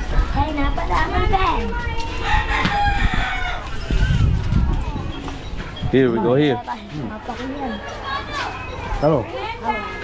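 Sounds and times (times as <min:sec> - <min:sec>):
rooster crowing: 0:02.2 - 0:03.8.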